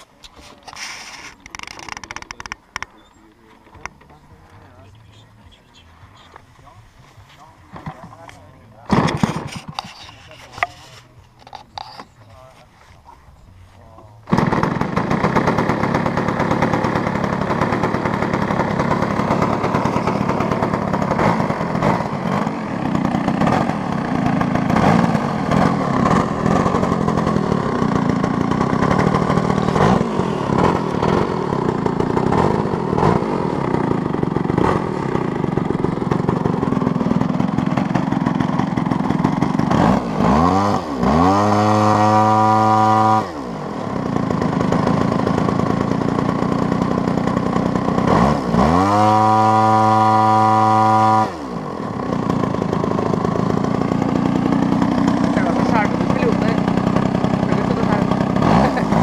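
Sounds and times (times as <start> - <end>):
model aircraft engine revving: 0.0 - 59.0.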